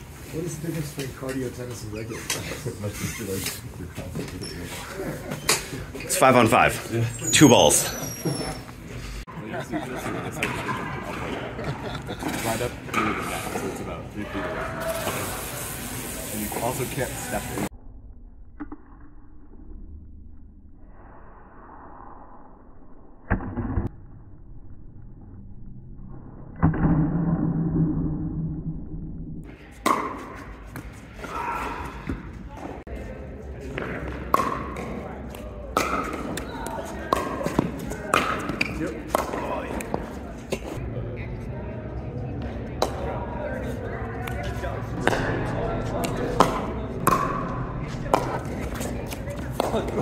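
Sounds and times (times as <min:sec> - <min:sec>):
paddle hitting ball: 0:46.3 - 0:48.9.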